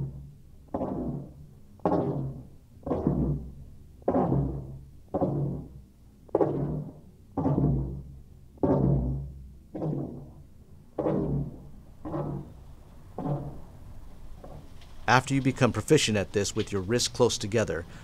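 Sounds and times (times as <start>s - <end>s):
floggers thudding on padded table: 1.9s - 10.4s.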